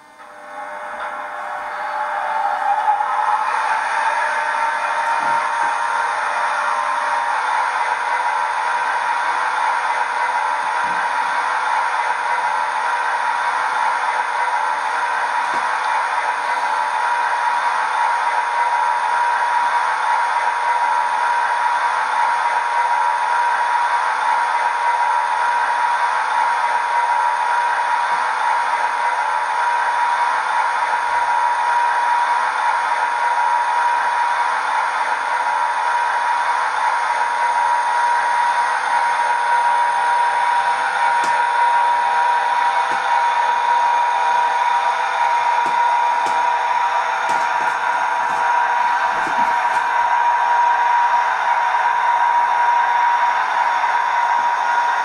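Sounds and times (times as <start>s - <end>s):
mechanical whir with high whine: 0.0s - 55.0s.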